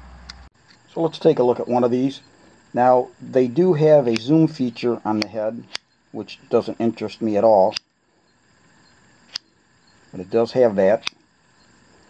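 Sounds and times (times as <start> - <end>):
faint steady hiss: 0.0 - 12.0
flashlight click: 4.1 - 4.3, 9.3 - 9.5.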